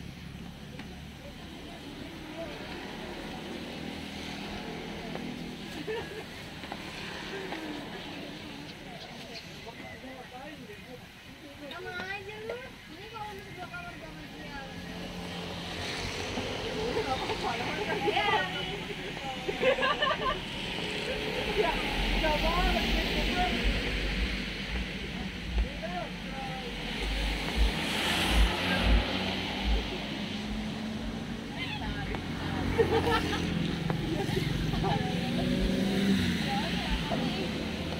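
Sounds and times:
vehicle engine hum: 14.4 - 37.9
people talking: 16.3 - 37.9.

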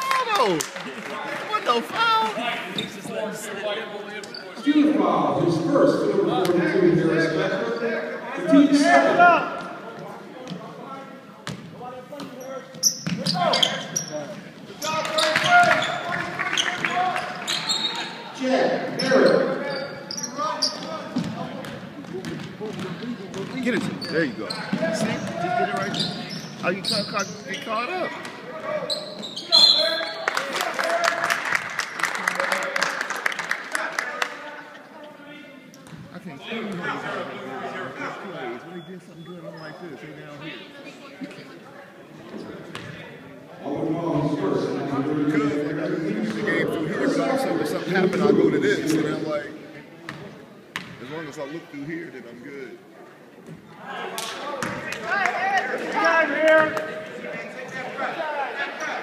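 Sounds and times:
voices echoing in gym: 0.0 - 59.0.

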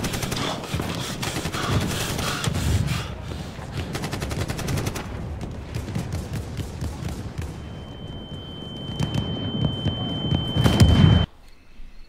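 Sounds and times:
scattered cracks: 0.0 - 7.9
high-pitched ringing tone: 7.8 - 12.0.

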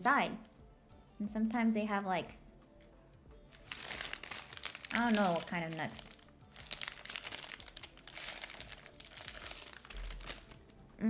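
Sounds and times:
paper wrapper crinkling: 3.5 - 10.8.

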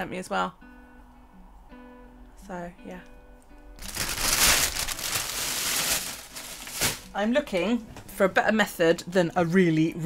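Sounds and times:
plastic bag crinkling: 3.8 - 7.2.

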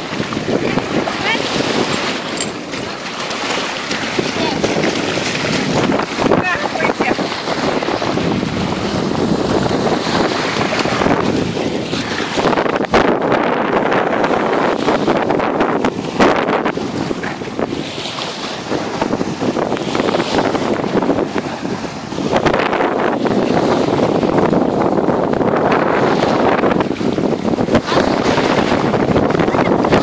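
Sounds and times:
waves breaking on shore: 0.0 - 30.0
wind buffeting microphone: 0.0 - 30.0.

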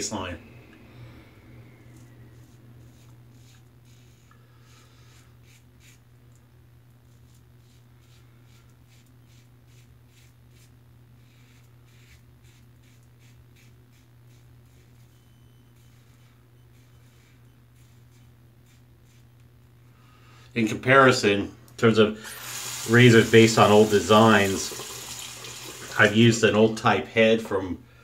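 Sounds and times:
steady low hum: 0.0 - 28.0
razor scraping stubble: 1.9 - 6.1, 7.1 - 19.5.

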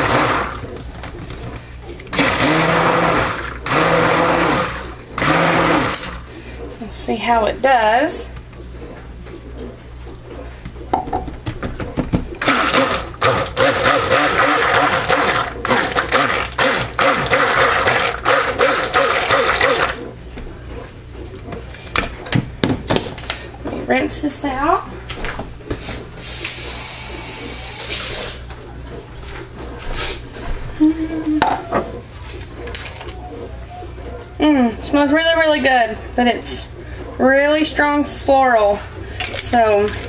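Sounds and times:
stick blender whirring: 0.0 - 9.8, 12.2 - 22.3
low electrical hum: 0.0 - 40.0.

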